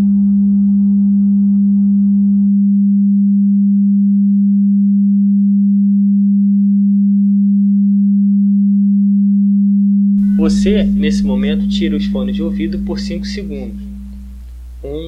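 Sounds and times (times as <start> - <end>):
low electronic pure tone: 0.0 - 15.0
faint music: 10.2 - 15.0.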